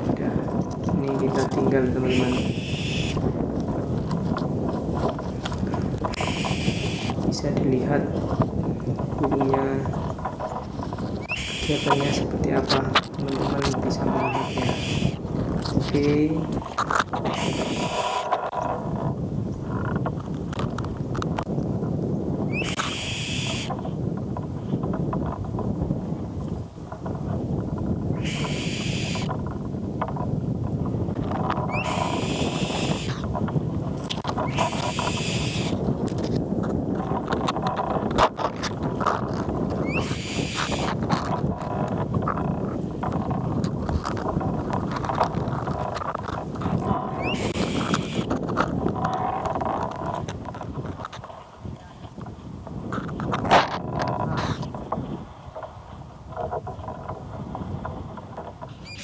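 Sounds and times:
wind on microphone: 0.0s - 59.0s
eagle screaming call: 2.1s - 3.2s, 6.2s - 7.2s, 11.2s - 12.2s, 14.2s - 15.2s, 17.3s - 18.3s, 22.5s - 23.7s, 28.2s - 29.3s, 31.7s - 33.1s, 34.4s - 35.8s, 39.8s - 41.0s, 47.1s - 48.3s.

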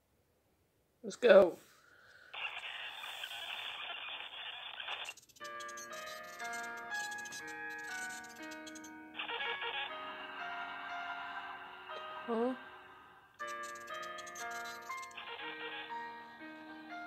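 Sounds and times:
tv static hiss: 2.3s - 6.5s, 8.0s - 10.0s
slow eerie tune: 5.7s - 17.0s.

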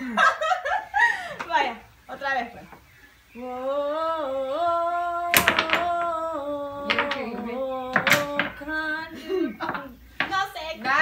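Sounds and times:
woman singing unaccompanied: 3.3s - 11.0s
sharp knocks: 5.3s - 8.8s, 9.6s - 10.6s.

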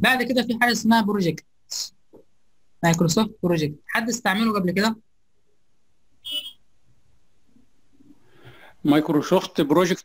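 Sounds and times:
short electronic beep: 6.2s - 6.6s.

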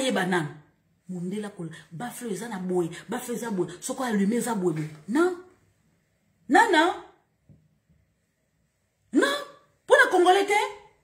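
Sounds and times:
woman speaking: 0.0s - 5.6s, 6.5s - 7.2s, 9.1s - 11.0s.

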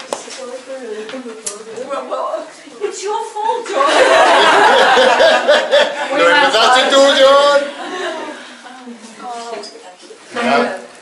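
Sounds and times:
people chuckling and talking: 0.8s - 10.3s
overlapping laughter and chatter: 2.7s - 9.2s.

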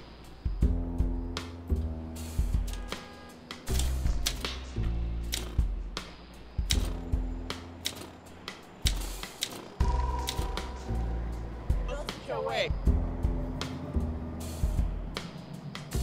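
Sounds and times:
music with low bass notes: 0.5s - 3.0s, 6.6s - 7.8s, 9.8s - 12.1s, 12.8s - 16.0s.

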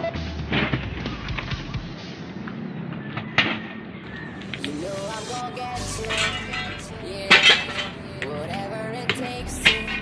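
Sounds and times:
hard pieces clattering together: 6.1s - 8.0s, 9.6s - 10.0s.

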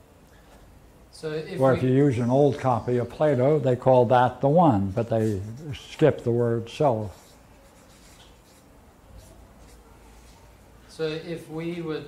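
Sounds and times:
marker scratching on paper: 4.7s - 10.6s.

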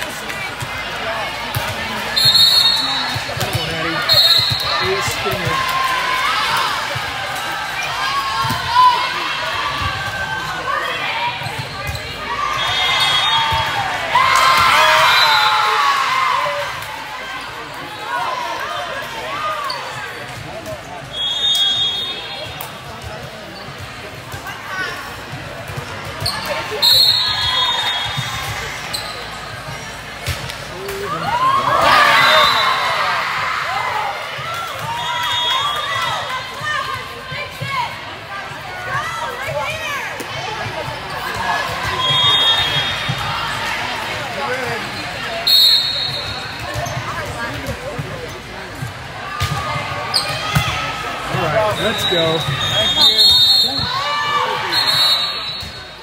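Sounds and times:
crowd cheering and shouting: 0.0s - 19.8s, 30.7s - 46.9s, 49.1s - 56.0s
murmur of spectators: 0.0s - 56.0s
shoes squeaking on court floor: 1.7s - 5.6s, 26.1s - 30.0s, 50.1s - 50.6s.

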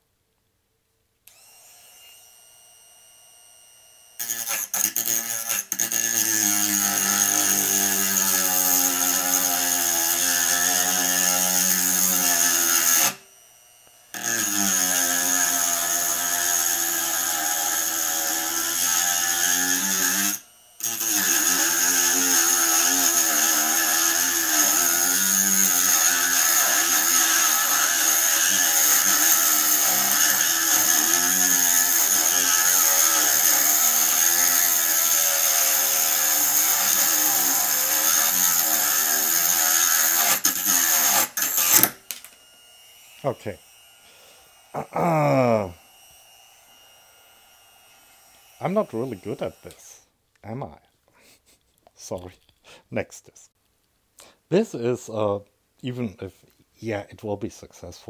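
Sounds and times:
rotary tool grinding metal: 1.3s - 50.0s.

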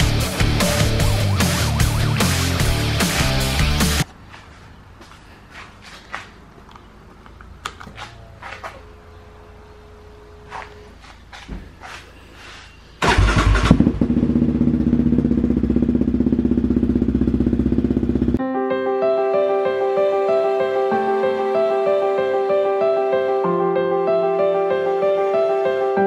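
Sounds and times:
engine cranking: 13.0s - 14.3s
quad bike engine idling: 13.0s - 18.4s.

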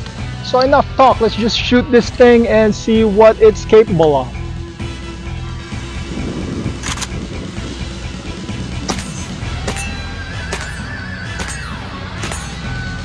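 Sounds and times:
sharp percussive hits: 8.9s - 12.7s.

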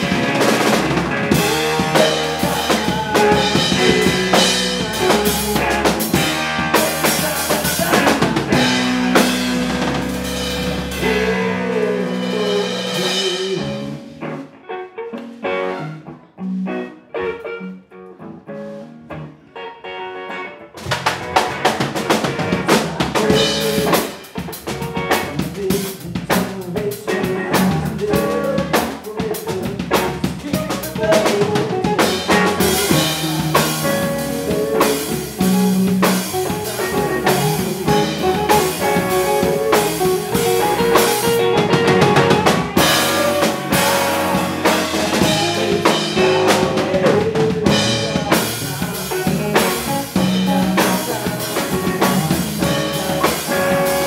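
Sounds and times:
electric guitar: 0.0s - 54.0s
rock band playing: 0.0s - 54.0s.

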